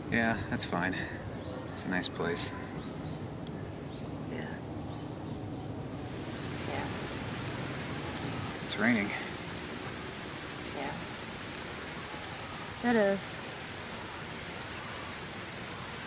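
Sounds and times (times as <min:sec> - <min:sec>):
outdoor background hiss: 0:00.0 - 0:16.0.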